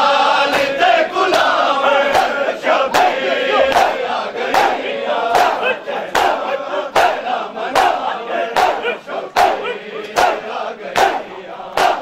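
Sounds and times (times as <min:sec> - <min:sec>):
crowd calling out together: 0:00.0 - 0:12.0
people slapping chests in unison: 0:00.2 - 0:12.0.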